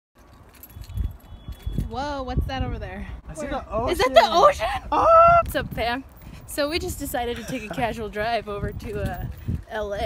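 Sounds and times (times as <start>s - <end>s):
woman speaking: 5.5s - 10.0s.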